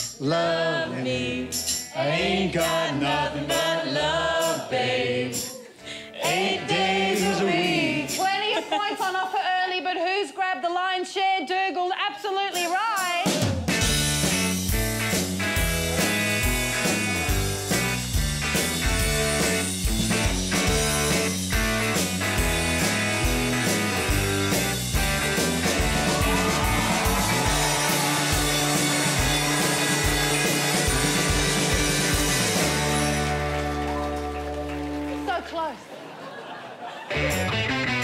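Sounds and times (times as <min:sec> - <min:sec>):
drum hits: 0:13.3 - 0:33.5
bass line: 0:13.7 - 0:35.3, 0:37.1 - 0:38.0
electric guitar: 0:13.7 - 0:35.3, 0:37.1 - 0:38.0.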